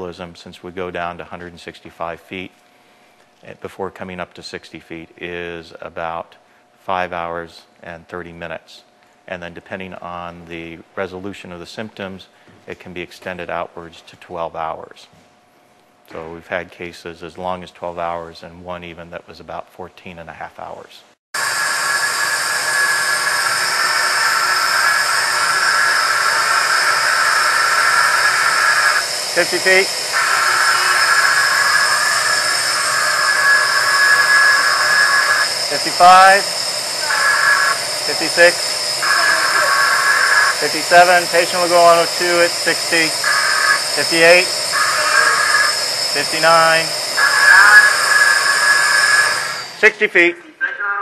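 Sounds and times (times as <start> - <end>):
compressed air hissing: 21.4 - 50.0.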